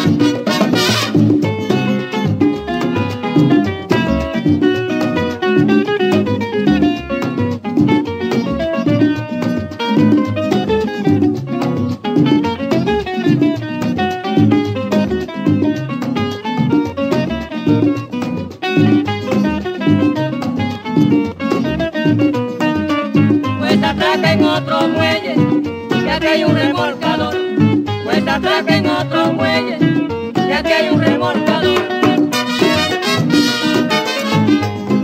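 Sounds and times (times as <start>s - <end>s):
band bass and rhythm: 0.0s - 35.0s.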